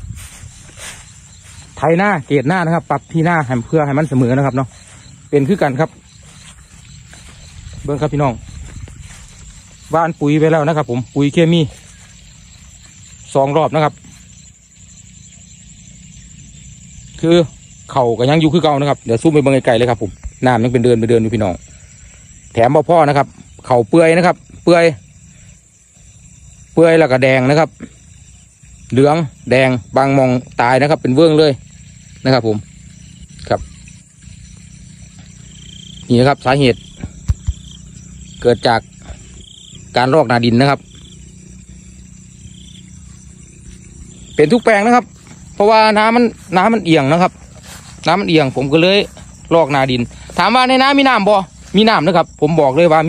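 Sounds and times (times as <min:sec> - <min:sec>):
insects trilling: 0:00.0 - 0:53.0
man speaking: 0:01.7 - 0:06.0, 0:07.8 - 0:08.6, 0:09.9 - 0:11.9, 0:44.4 - 0:53.0
low steady rumble: 0:40.8 - 0:49.5.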